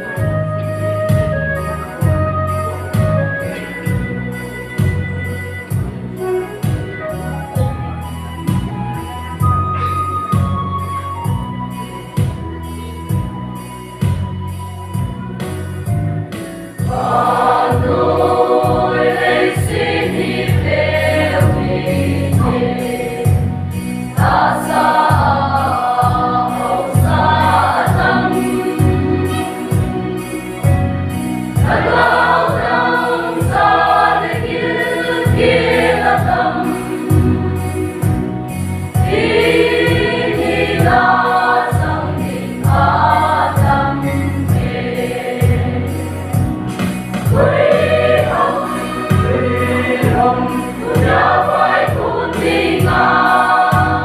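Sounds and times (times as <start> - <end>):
instrumental backing with bass: 0.0 - 54.0
choir singing gospel: 16.3 - 54.0.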